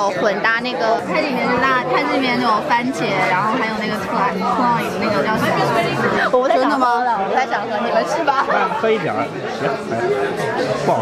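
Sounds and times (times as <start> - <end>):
overlapping crowd chatter: 0.0 - 11.0.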